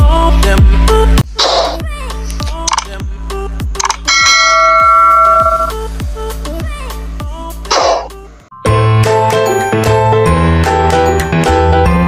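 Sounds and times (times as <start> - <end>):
notification bell ding: 4.1 - 5.8
electronic music with kick drum: 4.2 - 5.8.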